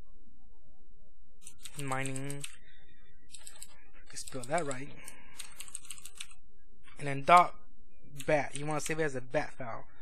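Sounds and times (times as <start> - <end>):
computer keyboard typing: 1.4 - 2.6, 3.3 - 6.4, 8.2 - 9.0.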